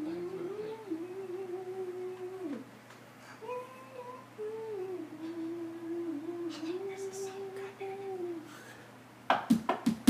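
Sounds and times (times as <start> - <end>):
man humming: 0.0 - 2.7, 3.4 - 8.6.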